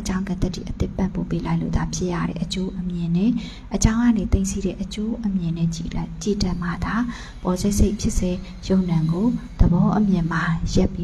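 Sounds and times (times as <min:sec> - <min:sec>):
woman speaking into microphone: 0:00.0 - 0:11.0.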